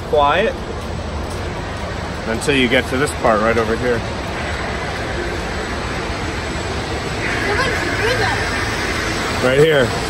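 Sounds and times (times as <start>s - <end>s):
air ducts blowing: 4.0s - 10.0s.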